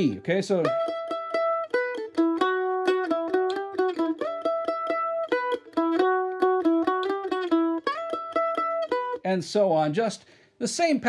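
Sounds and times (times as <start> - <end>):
mandolin picking a lick: 0.0 - 9.3.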